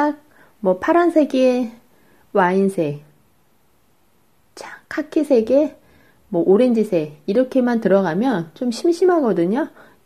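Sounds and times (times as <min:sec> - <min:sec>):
woman speaking: 0:00.0 - 0:03.2, 0:04.5 - 0:10.0.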